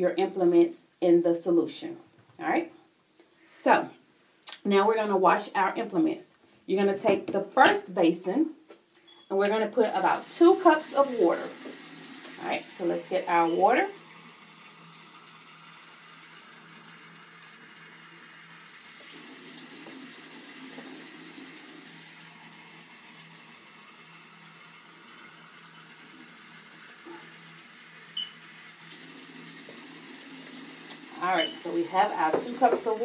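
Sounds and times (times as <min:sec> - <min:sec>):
faucet water filling plastic basin: 0:09.5 - 0:33.0.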